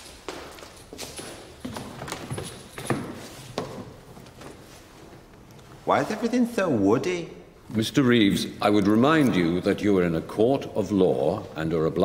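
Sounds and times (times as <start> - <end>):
footsteps on hard floor: 0.0 - 5.3.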